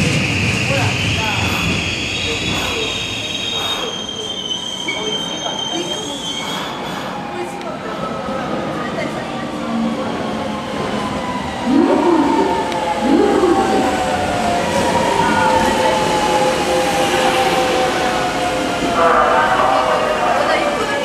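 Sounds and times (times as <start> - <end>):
rumbling train wheels: 0.0 - 21.0
train motors whining: 0.8 - 4.3.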